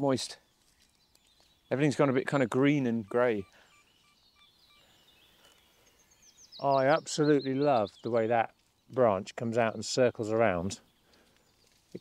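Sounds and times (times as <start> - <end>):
distant bird chirps: 0.0 - 12.0.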